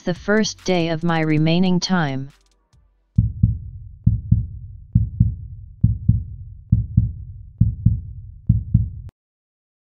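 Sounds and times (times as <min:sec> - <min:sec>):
heartbeat thumps: 0:03.2 - 0:09.1.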